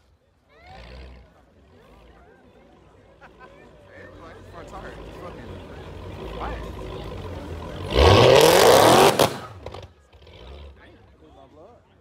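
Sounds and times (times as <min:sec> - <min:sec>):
car engine revving: 0:04.4 - 0:10.8.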